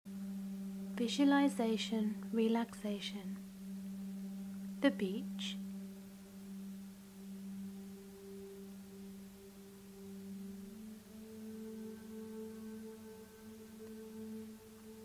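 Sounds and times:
faint higher tones: 0:00.1 - 0:15.0
low drone tone: 0:00.1 - 0:15.0.

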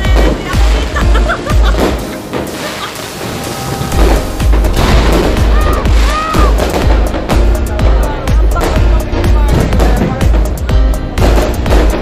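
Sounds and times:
fireworks bangs and crackles: 0:00.0 - 0:12.0
loud music: 0:00.0 - 0:12.0.

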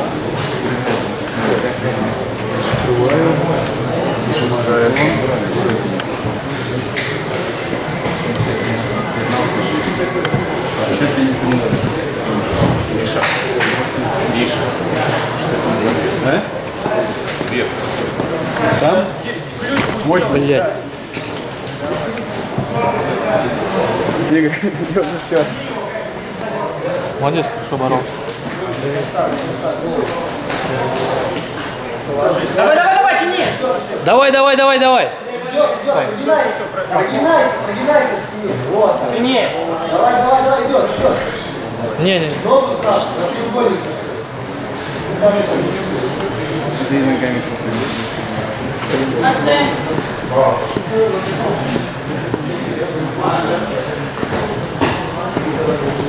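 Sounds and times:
people talking and calling out: 0:00.0 - 0:56.0.

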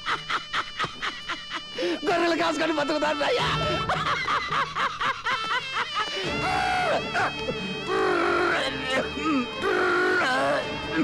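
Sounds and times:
sustained background music: 0:00.0 - 0:11.0.

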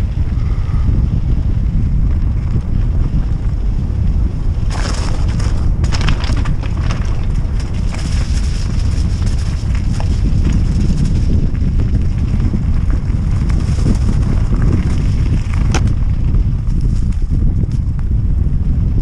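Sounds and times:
bike clicks and rattles: 0:00.0 - 0:18.5
bike tyres on gravel: 0:00.0 - 0:19.0
wind buffeting microphone: 0:00.0 - 0:19.0.

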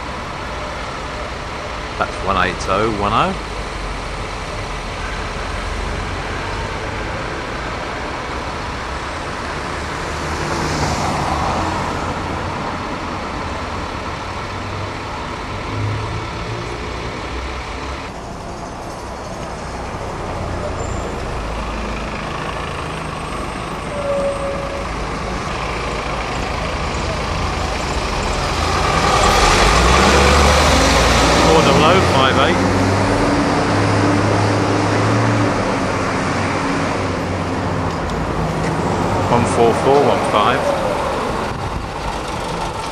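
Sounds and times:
diesel bus engines: 0:00.0 - 0:42.9.

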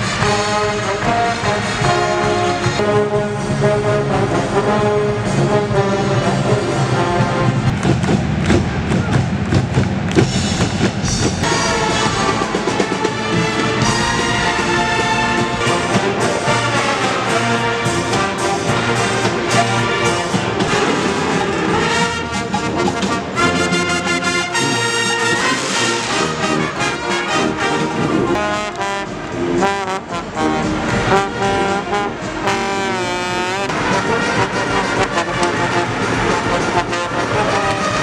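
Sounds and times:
trombones and trumpets: 0:00.0 - 0:08.6, 0:10.3 - 0:38.0
brass band playing: 0:00.0 - 0:38.0
drum kit beat: 0:05.3 - 0:38.0.

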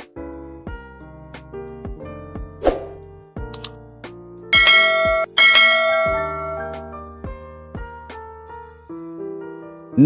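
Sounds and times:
background music: 0:00.0 - 0:10.0
notification bell dings: 0:04.6 - 0:06.9.

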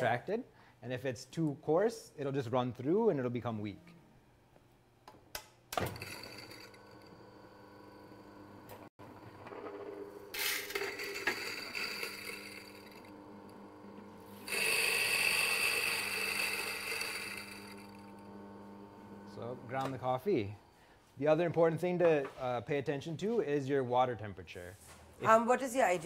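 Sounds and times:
coffee grinder grinding beans: 0:06.0 - 0:19.8.

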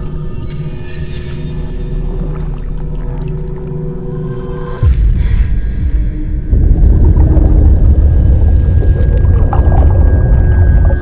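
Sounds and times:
deep rumbling drone: 0:01.3 - 0:11.0.

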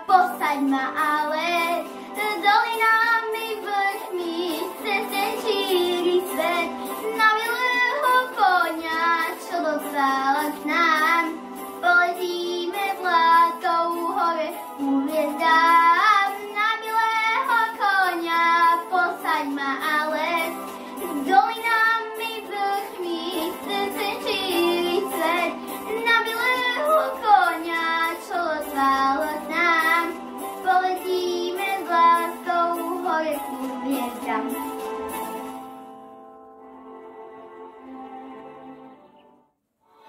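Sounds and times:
girl singing into microphone: 0:00.0 - 0:34.7.

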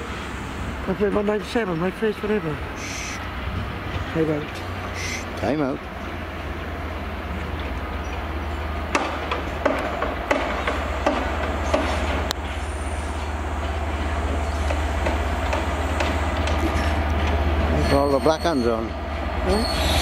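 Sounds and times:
diesel locomotive engine drone: 0:00.0 - 0:20.0
train wheels clicking over rail joints: 0:03.8 - 0:20.0.

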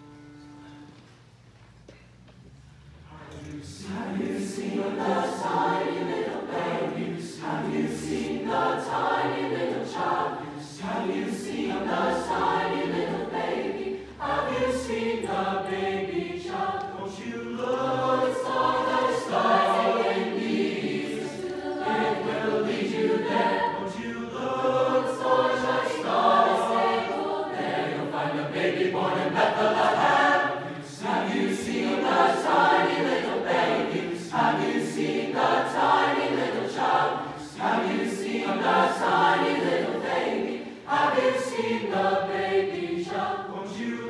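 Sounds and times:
mixed choir singing: 0:03.0 - 0:44.0.

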